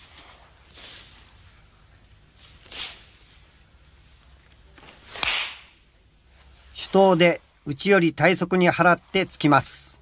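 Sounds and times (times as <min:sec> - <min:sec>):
swish and snap of cloth: 0:04.8 - 0:05.8.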